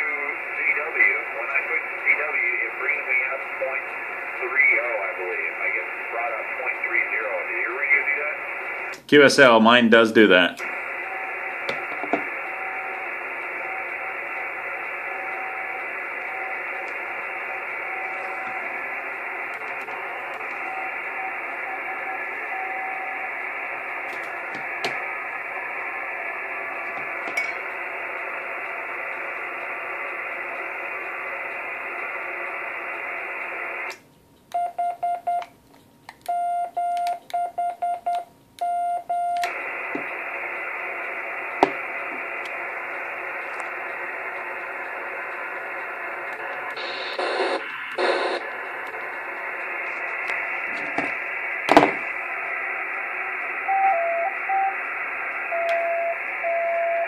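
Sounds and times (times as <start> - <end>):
radio receiver hiss: 0.0 - 34.1, 39.0 - 57.0
morse code beeping: 34.6 - 35.5, 36.3 - 39.4.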